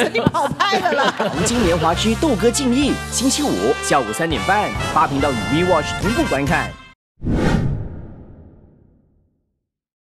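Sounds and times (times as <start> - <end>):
whoosh sound effect: 7.2 - 9.0.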